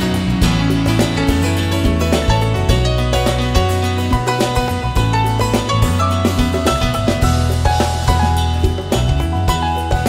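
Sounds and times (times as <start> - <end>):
bass line: 0.0 - 10.0
drum kit beat: 0.0 - 10.0
melody of held notes: 0.0 - 10.0.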